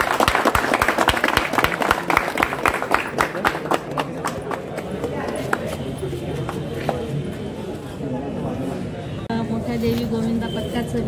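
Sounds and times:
people clapping: 0:00.0 - 0:07.1.

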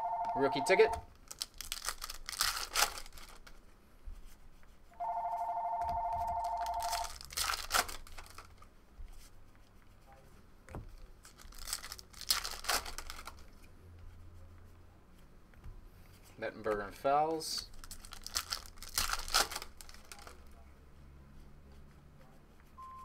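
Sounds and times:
telephone ringing: 0:00.0 - 0:01.0, 0:05.0 - 0:07.0
card pack wrappers tearing: 0:01.1 - 0:03.6, 0:06.4 - 0:08.5, 0:11.2 - 0:13.5, 0:17.6 - 0:20.4.

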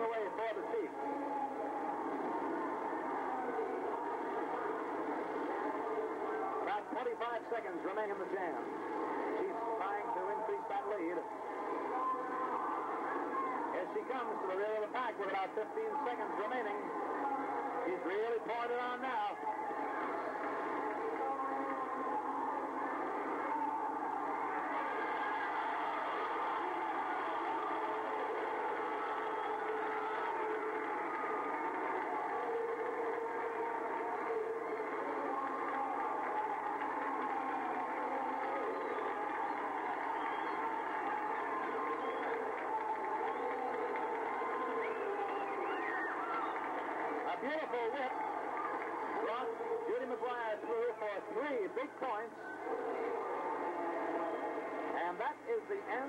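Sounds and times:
crowd cheering and talking: 0:00.0 - 0:56.0.

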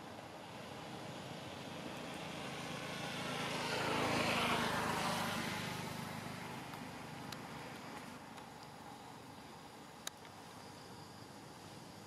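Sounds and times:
motor vehicle driving past: 0:00.6 - 0:07.8.

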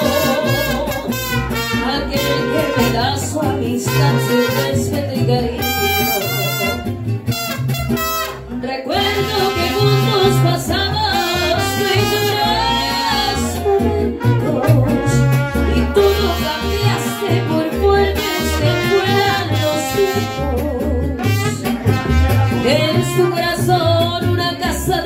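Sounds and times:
trumpet phrase: 0:00.0 - 0:03.2, 0:03.8 - 0:04.8, 0:05.6 - 0:13.0, 0:14.2 - 0:20.6, 0:21.2 - 0:23.6
person singing: 0:00.0 - 0:06.8, 0:08.6 - 0:25.0
band playing live: 0:00.0 - 0:25.0
bass line: 0:00.0 - 0:25.0.

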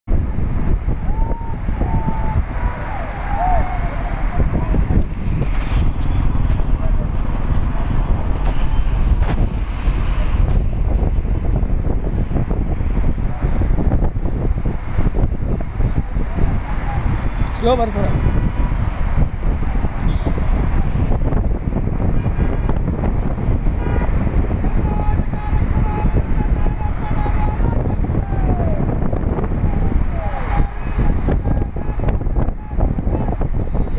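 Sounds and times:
wind buffeting microphone: 0:00.0 - 0:33.9
car road noise: 0:00.1 - 0:33.9.

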